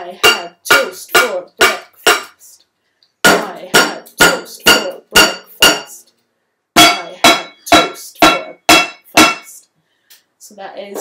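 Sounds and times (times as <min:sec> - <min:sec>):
wooden spoons beating metal pans: 0:00.0 - 0:02.5, 0:03.2 - 0:06.0, 0:06.8 - 0:09.6.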